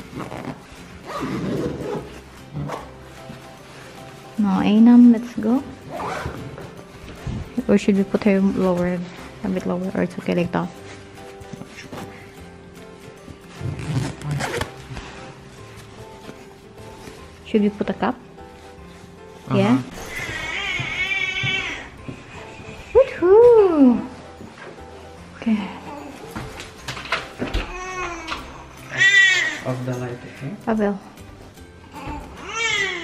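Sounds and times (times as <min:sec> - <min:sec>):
zipper being pulled: 0:00.0 - 0:03.0, 0:05.8 - 0:06.7, 0:13.5 - 0:15.5
soft background music: 0:00.0 - 0:33.0
newborn baby crying: 0:20.0 - 0:22.0, 0:27.6 - 0:29.6, 0:31.9 - 0:33.0.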